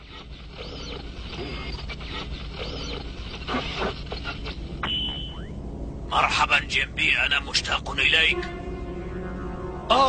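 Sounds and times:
static interference hiss: 0.0s - 8.4s.

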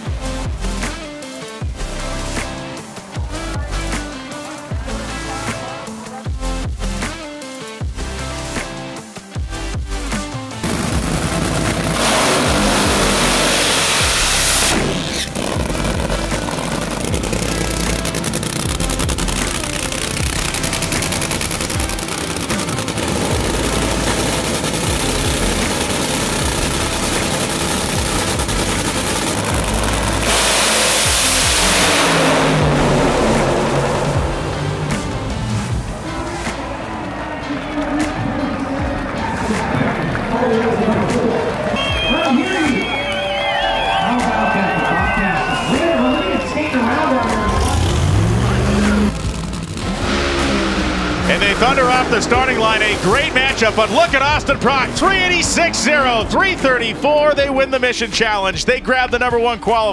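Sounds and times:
supercharged engine running: 0.0s - 7.1s, 7.8s - 43.0s, 45.0s - 59.4s
music: 0.0s - 59.9s.

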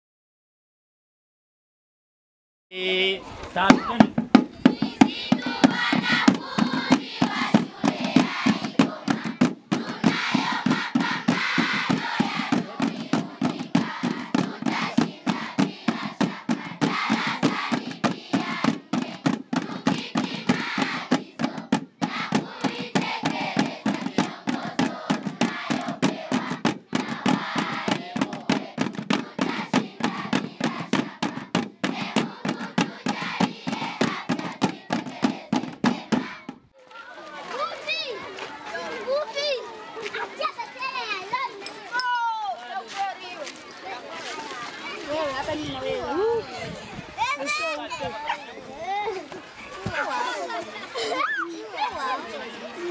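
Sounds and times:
children singing: 3.6s - 36.5s
snare drums in rapid beat: 3.6s - 36.6s.

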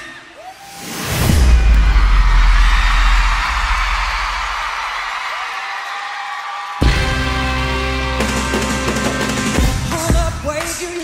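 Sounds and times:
crowd screaming: 0.0s - 9.6s
band playing: 6.8s - 11.0s.

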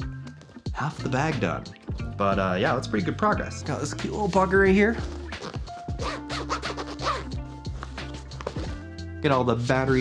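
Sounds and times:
background music: 0.0s - 10.0s
zipper scratching open: 5.0s - 7.4s.

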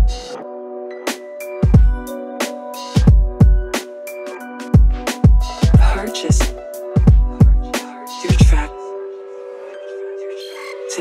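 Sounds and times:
hip-hop drums: 0.0s - 0.4s, 1.1s - 8.8s.

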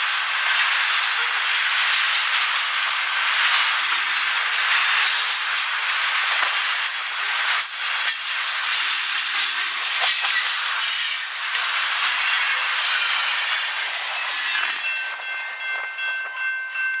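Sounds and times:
train wheels clacking on rails: 0.0s - 17.0s
steady high ringing: 12.6s - 17.0s.

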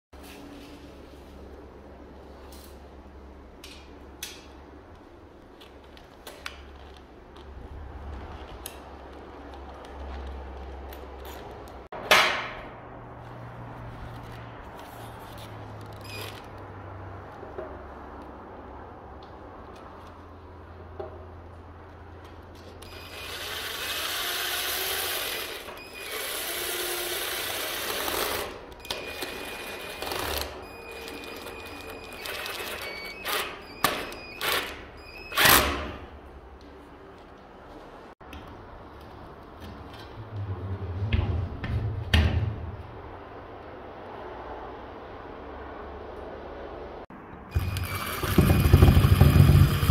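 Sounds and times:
power tool whining: 47.5s - 49.9s.

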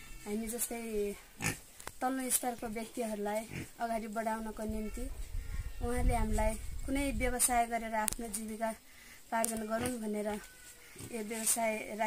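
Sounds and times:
woman talking: 0.2s - 1.2s, 2.0s - 5.1s, 5.8s - 10.5s, 11.1s - 12.0s
pig grunting: 1.4s - 1.6s, 3.5s - 3.8s.

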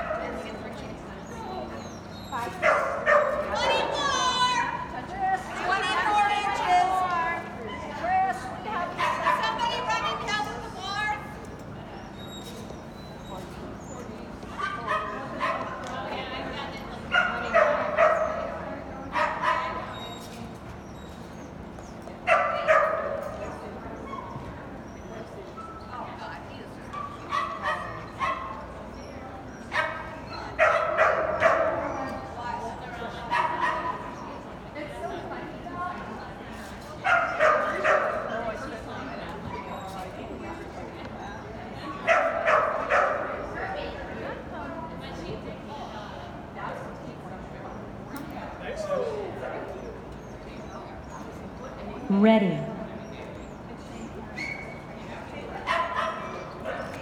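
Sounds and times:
dog barking: 2.6s - 3.8s, 14.6s - 15.7s, 17.1s - 18.5s, 19.1s - 19.8s, 22.3s - 23.3s, 27.0s - 28.6s, 29.7s - 32.1s, 33.3s - 34.1s, 37.0s - 38.3s, 42.0s - 43.4s, 55.6s - 56.9s.

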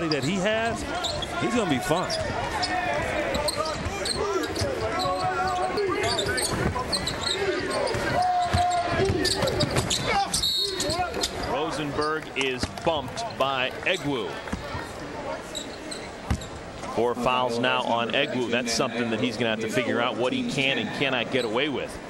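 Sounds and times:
sneaker squeaks: 0.0s - 12.5s, 13.2s - 16.9s
players and crowd voices: 0.0s - 22.0s
shrill referee whistle: 8.6s - 11.0s.

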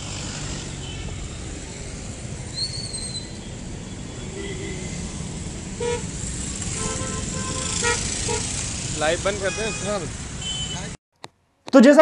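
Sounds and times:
street traffic rumbling: 0.0s - 11.0s
vehicle horn toots: 4.2s - 5.0s, 5.8s - 8.6s, 9.2s - 11.0s.

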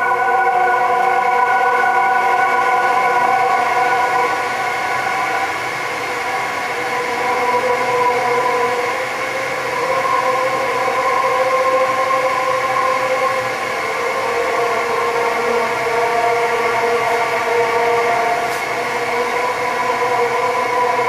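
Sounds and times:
synthesizer drone: 0.0s - 21.0s.

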